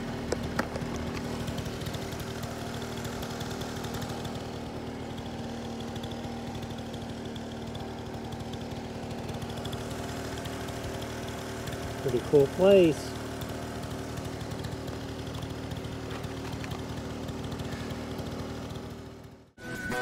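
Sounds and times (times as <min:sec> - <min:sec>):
scooter engine idling: 0:00.0 - 0:20.0.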